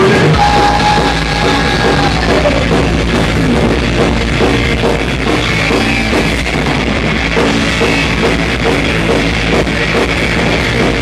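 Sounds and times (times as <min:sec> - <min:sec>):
distorted electric guitar: 0:00.0 - 0:11.0
pounding drum kit: 0:00.0 - 0:11.0.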